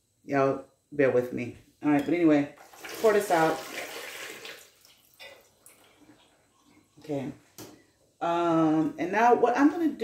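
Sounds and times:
water pouring and splashing: 2.6 - 6.3.

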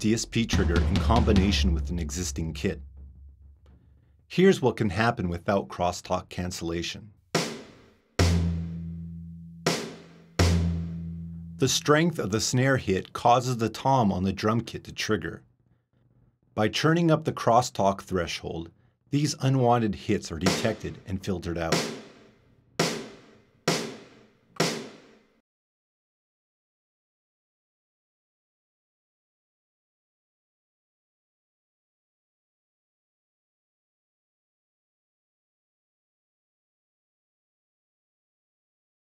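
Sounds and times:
snare drum hits: 7.4 - 11.6, 20.5 - 21.0, 21.8 - 25.2
low tom ringing: 10.4 - 11.8.

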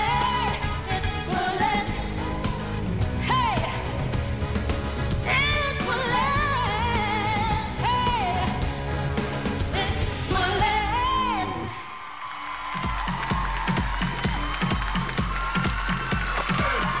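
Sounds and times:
woman singing: 0.0 - 2.4, 3.2 - 3.9, 5.2 - 8.7, 9.6 - 11.7
heavy bass drum beat: 0.0 - 11.0, 12.8 - 17.0
pop backing music: 0.0 - 11.8, 12.7 - 17.0.

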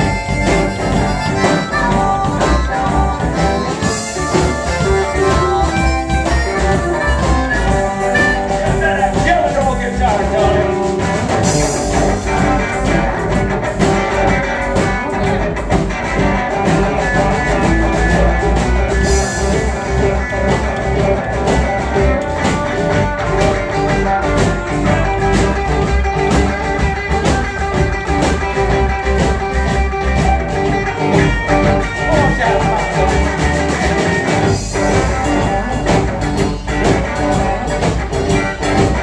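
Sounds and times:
electric guitar lead: 0.0 - 39.0
live blues band: 0.0 - 39.0.

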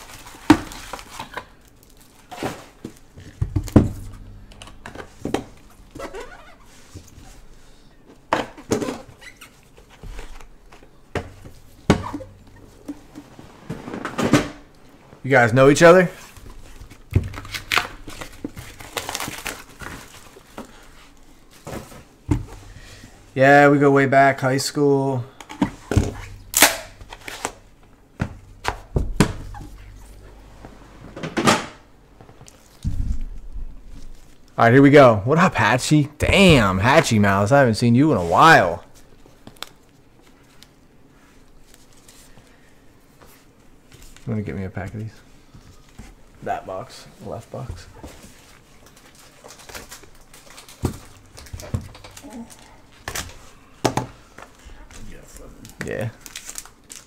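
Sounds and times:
shrink wrap crinkling: 0.0 - 7.8, 15.3 - 23.2, 38.8 - 40.8, 48.2 - 53.7, 54.5 - 57.0
cardboard boxes knocking and thudding: 2.3 - 6.2, 28.2 - 30.2
box sliding scrape: 13.0 - 14.4.

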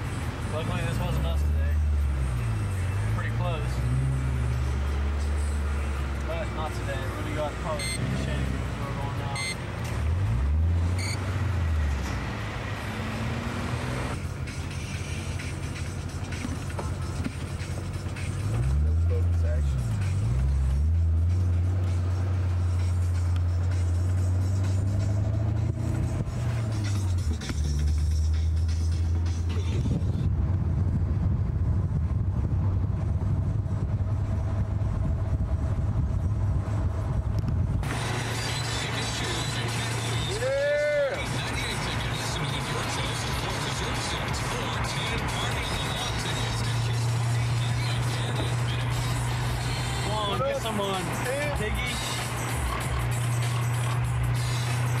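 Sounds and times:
car engine droning: 0.0 - 55.0
road and traffic noise: 0.0 - 55.0.

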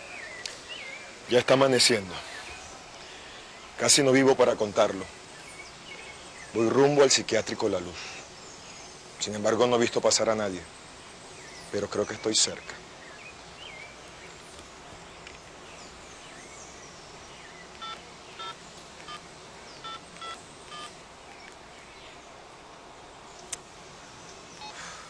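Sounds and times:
faint bird chirps: 7.9 - 22.4, 23.3 - 25.0
phone keypad beeps: 17.8 - 19.2, 19.8 - 20.9, 24.6 - 24.8.

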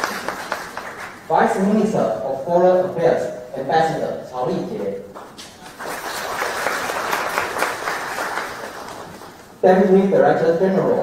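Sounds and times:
audience applauding: 0.0 - 1.3, 5.6 - 9.4.

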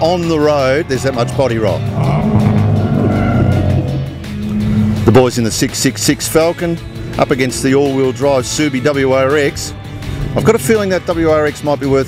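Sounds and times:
racing car engines: 0.0 - 12.0.

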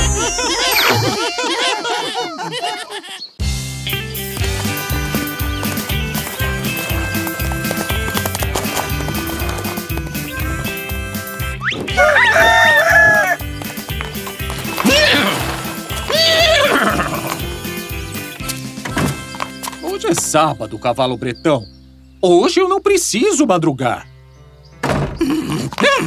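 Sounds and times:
upbeat cartoon music: 0.0 - 1.8, 3.4 - 21.2
cartoon rooster crowing: 0.0 - 2.5, 11.9 - 13.4.

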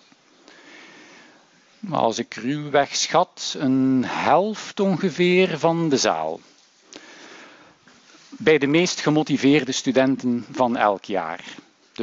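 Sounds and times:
man speaking: 1.8 - 6.5, 8.3 - 12.0.

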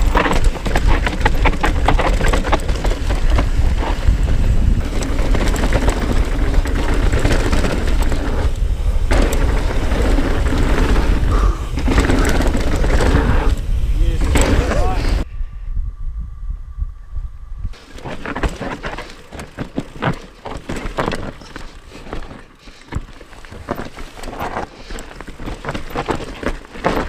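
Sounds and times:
bike clattering over bumps: 0.0 - 15.2, 17.8 - 27.0
bike tyres crunching over rock: 0.0 - 15.2, 17.8 - 27.0
wind rumble on microphone: 0.0 - 20.2.

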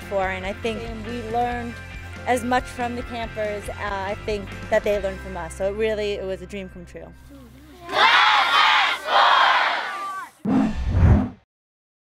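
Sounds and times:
crowd shouting a cheer: 7.8 - 10.4.

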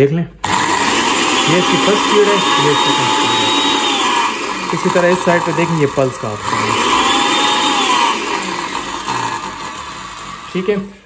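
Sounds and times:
food processor motor whining: 0.4 - 11.0.

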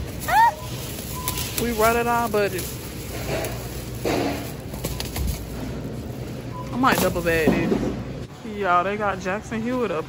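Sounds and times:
plastic bags rustling: 0.0 - 7.7
store background hum: 0.0 - 10.0.

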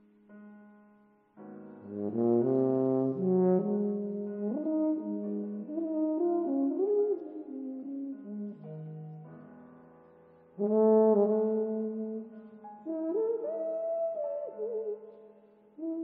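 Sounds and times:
piano: 0.0 - 16.0
tuba playing melody: 1.8 - 9.2, 10.6 - 15.1, 15.8 - 16.0.

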